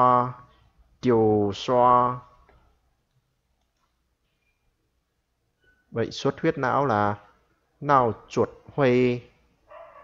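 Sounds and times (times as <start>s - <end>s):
person speaking: 0.0s - 3.7s, 5.9s - 9.5s.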